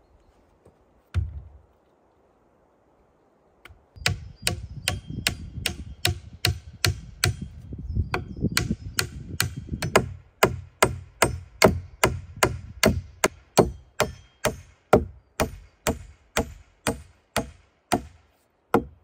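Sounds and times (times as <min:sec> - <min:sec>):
axe chopping log: 0:08.2 - 0:19.0.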